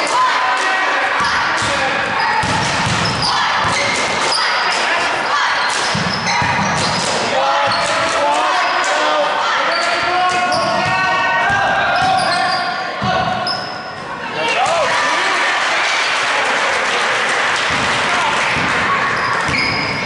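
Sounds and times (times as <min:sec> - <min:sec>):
voices shouting: 0:00.0 - 0:16.2
sneakers squeaking on hardwood: 0:02.2 - 0:04.6, 0:05.3 - 0:08.1, 0:09.7 - 0:11.0, 0:11.9 - 0:12.8, 0:19.0 - 0:20.0
basketball bouncing: 0:02.4 - 0:04.0, 0:05.8 - 0:07.0, 0:17.6 - 0:20.0.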